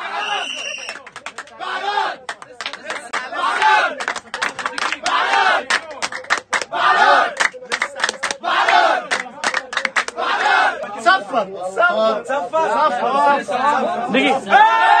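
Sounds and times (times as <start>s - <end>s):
crowd shouting a chant: 0.0s - 2.3s, 3.0s - 4.1s, 4.8s - 6.0s, 6.6s - 7.4s, 8.3s - 9.4s, 10.1s - 11.3s, 11.9s - 15.0s
hand claps: 0.6s - 1.6s, 2.2s - 10.9s.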